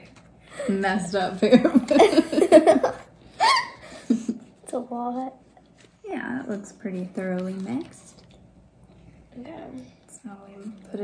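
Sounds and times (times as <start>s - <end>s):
women laughing: 1.4s - 4.5s.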